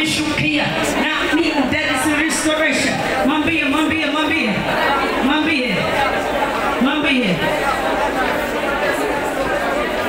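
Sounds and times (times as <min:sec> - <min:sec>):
congregation praying aloud: 0:00.0 - 0:10.0.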